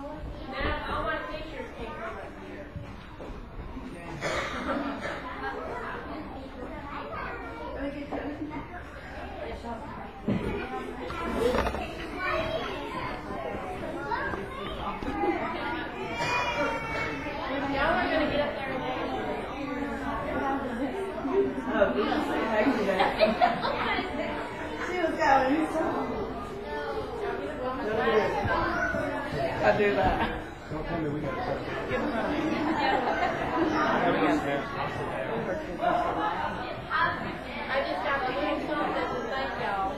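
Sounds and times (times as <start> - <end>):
many voices chattering: 0.0 - 39.9.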